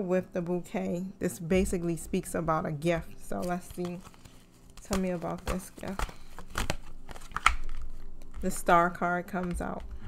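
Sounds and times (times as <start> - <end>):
cards being shuffled: 3.3 - 10.0.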